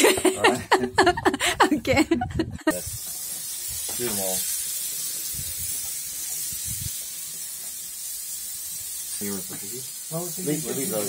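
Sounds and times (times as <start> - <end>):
meat sizzling on a grill: 2.7 - 11.0.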